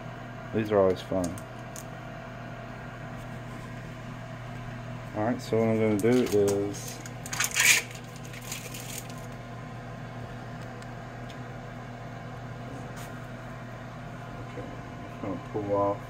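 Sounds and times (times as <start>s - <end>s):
steady low hum: 0.0s - 16.0s
plastic wrapper crinkling: 5.9s - 9.3s.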